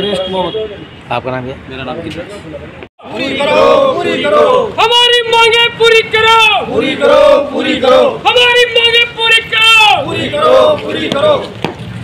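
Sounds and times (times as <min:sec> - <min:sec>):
men chanting together: 0:03.0 - 0:04.8, 0:06.6 - 0:08.2, 0:10.0 - 0:11.5.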